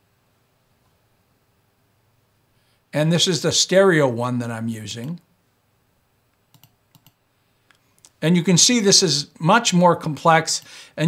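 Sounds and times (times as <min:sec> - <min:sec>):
computer mouse clicks: 0:06.3 - 0:07.2.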